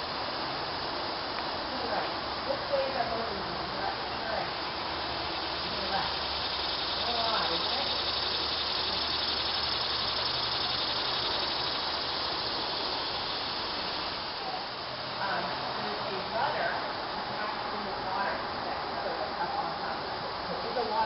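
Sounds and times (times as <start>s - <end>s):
insects buzzing in trees: 0.0s - 21.0s.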